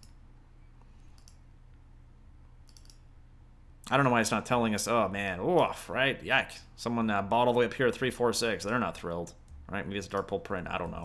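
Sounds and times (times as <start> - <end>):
low steady hum: 0.0 - 11.0
faint computer mouse clicks: 0.8 - 1.4, 2.6 - 3.0.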